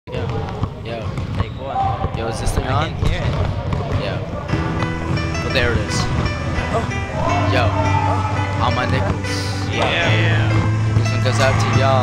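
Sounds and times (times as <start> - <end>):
people talking: 0.1 - 4.3, 5.4 - 6.1, 6.8 - 8.0, 8.6 - 12.0
basketball bouncing on wooden floor: 0.3 - 5.2.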